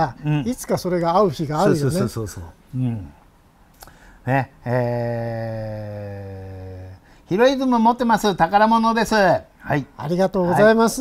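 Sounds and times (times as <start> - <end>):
man's drawn-out hesitation vowel: 4.2 - 7.1.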